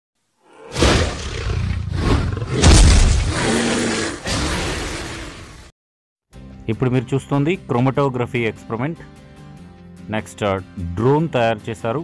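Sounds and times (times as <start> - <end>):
dragon roar sound effect: 0.4 - 5.7.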